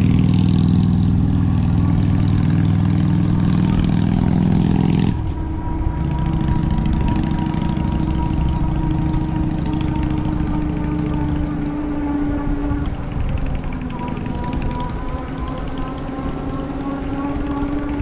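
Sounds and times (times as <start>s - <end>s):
electric motor whine: 0.0s - 18.0s
motorcycle engine passing: 0.0s - 18.0s.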